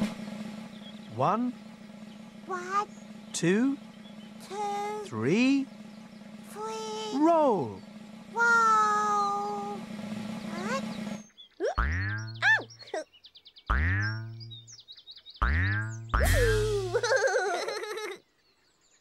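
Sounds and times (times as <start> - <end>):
cartoon boing sounds: 11.6 - 12.7, 13.7 - 14.3, 15.4 - 17.1
held falling tone: 16.1 - 17.1.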